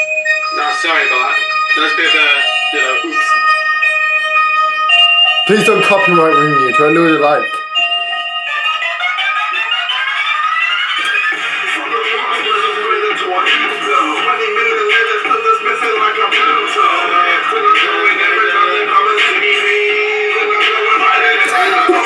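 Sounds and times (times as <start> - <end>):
music with steady beat: 0.0 - 8.8, 10.9 - 22.0.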